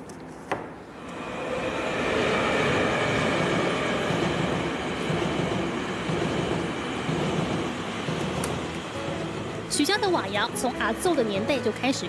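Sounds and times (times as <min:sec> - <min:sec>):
train wheels rushing on rail: 0:01.0 - 0:11.5.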